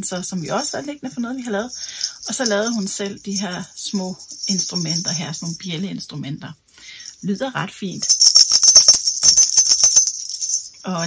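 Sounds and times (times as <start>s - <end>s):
shaker of small bells jingling: 0.4s - 5.9s, 6.9s - 11.0s
beads clicking: 8.0s - 10.9s.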